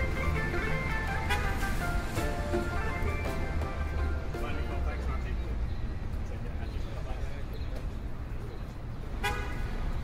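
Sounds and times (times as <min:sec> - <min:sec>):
car horn toot: 0:09.2 - 0:09.8.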